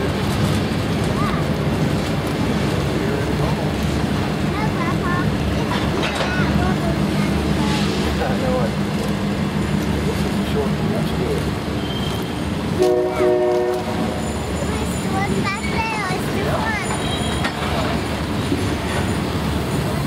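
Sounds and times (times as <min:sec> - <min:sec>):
freight train wheels rumbling: 0:00.0 - 0:20.0
train horn chord: 0:12.8 - 0:14.2.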